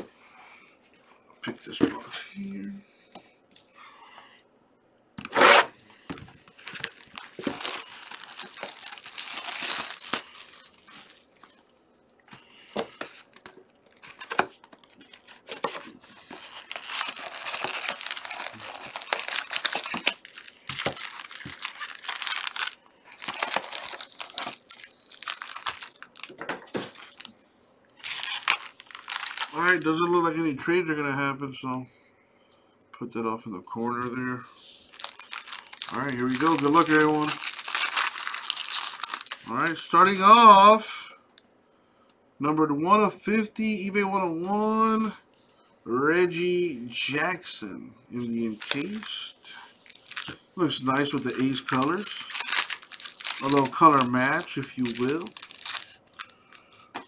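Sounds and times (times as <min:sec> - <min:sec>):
plastic wrapping tearing and crinkling: 0:06.5 - 0:11.7, 0:13.9 - 0:27.3, 0:28.0 - 0:29.9, 0:34.7 - 0:40.2, 0:48.4 - 0:57.0.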